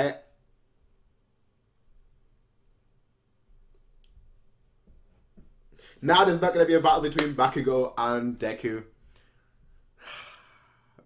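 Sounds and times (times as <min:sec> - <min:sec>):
faint breaths: 0:09.0 - 0:11.0.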